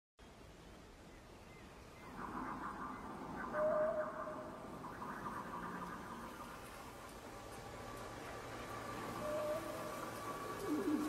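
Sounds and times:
held whine: 2.1s - 11.0s.

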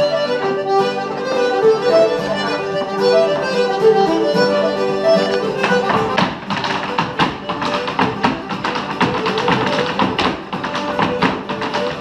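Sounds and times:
faint instrumental music: 0.0s - 12.0s
hard shoes tapping on wooden floor: 4.9s - 12.0s.

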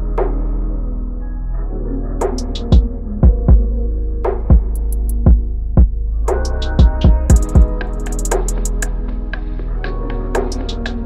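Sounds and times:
deep kick drum: 2.6s - 3.7s, 4.3s - 7.8s.

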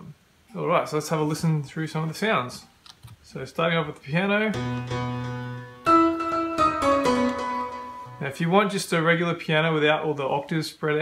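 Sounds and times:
grand piano notes with reverb: 4.5s - 8.4s.

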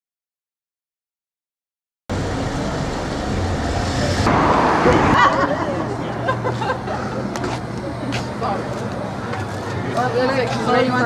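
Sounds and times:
rumble of passing cars: 2.1s - 11.0s.

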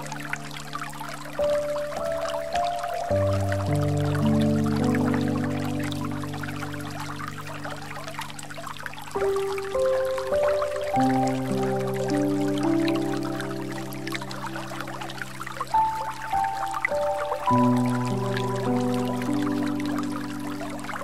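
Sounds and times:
calm relaxation music: 0.0s - 21.0s
flowing water: 0.0s - 21.0s.

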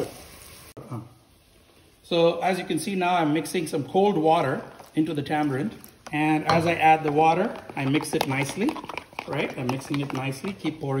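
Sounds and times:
onions sizzling in oil: 0.0s - 2.0s.

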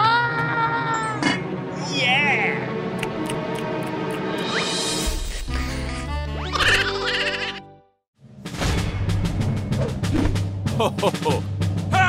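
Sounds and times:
background music: 0.0s - 12.0s
drum beats: 8.7s - 12.0s.

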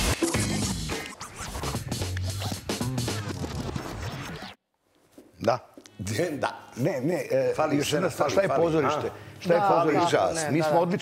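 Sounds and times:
turntable scratching: 0.0s - 4.6s.

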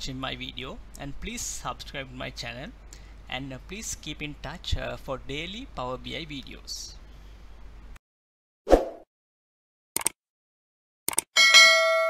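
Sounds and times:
notification bell ding: 11.4s - 12.0s.

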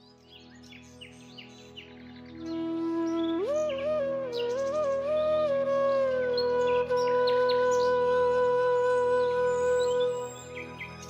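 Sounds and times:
flute long note: 2.4s - 11.0s.

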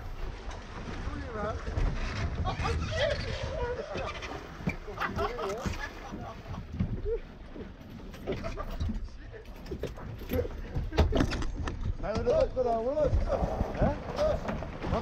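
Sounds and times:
wind buffeting microphone: 0.0s - 9.1s, 9.9s - 15.0s
knocks and clatter against boat: 0.0s - 15.0s
water splashing along boat hull: 0.0s - 15.0s.

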